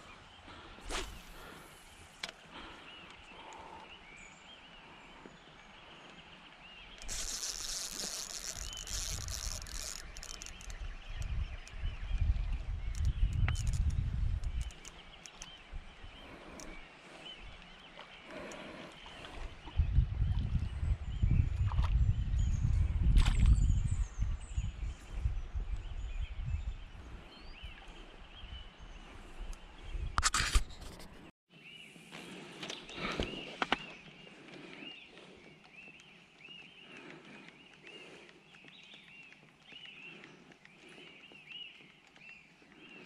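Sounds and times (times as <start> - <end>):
birds chirping: 0.0 - 43.0.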